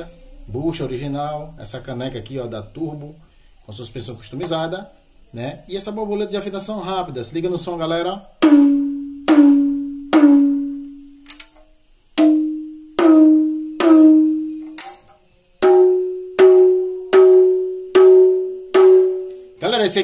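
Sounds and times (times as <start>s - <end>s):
hand-struck drum pitched tones: 8.4s - 11.0s, 12.2s - 15.0s, 15.6s - 19.6s.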